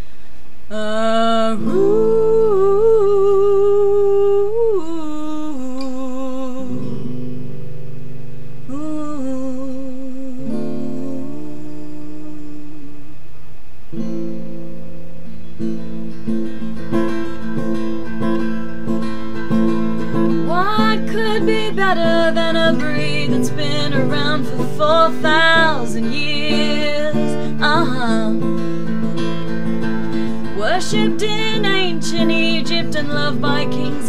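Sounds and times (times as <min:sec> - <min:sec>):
acoustic guitar strumming: 0:05.2 - 0:08.7, 0:10.3 - 0:34.0
wordless wavering sung line: 0:14.1 - 0:34.0.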